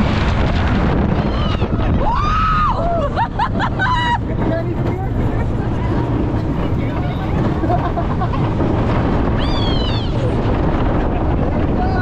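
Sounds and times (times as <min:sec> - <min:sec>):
wind rushing over microphone: 0:00.0 - 0:12.0
riders screaming and whooping: 0:01.0 - 0:04.6, 0:07.4 - 0:12.0.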